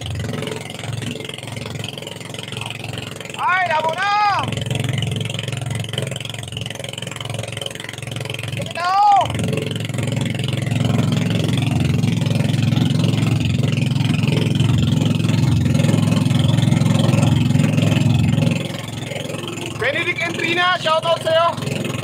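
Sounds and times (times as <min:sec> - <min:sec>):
boat engine droning: 0:00.0 - 0:22.0
wind: 0:00.0 - 0:22.0.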